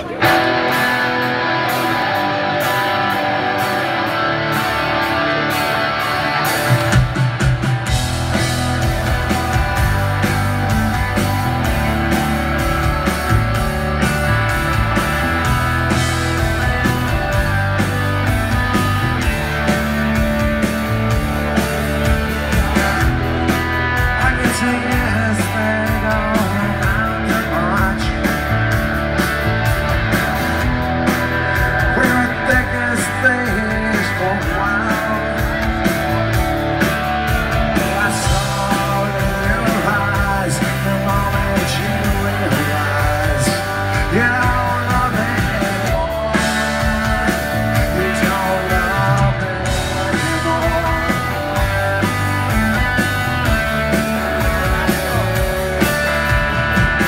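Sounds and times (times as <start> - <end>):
electric guitars: 0.0 - 57.0
rock band playing live: 0.0 - 57.0
steady drum beat: 0.0 - 57.0.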